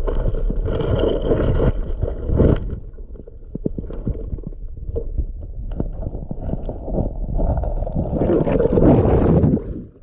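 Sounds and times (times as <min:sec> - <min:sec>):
underwater churning water rumble: 0:00.0 - 0:10.0.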